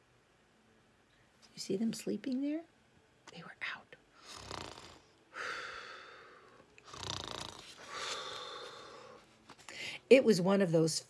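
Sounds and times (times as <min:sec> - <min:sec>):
woman imitating snoring: 0:04.2 - 0:06.2, 0:06.8 - 0:08.9.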